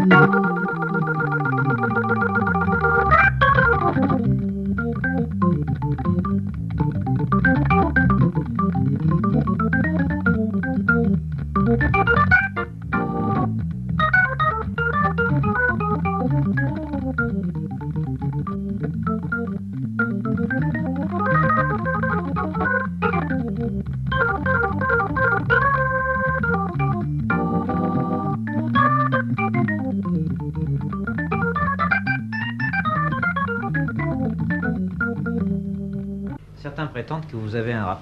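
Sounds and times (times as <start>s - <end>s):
jazz organ improvisation: 0.0s - 36.8s.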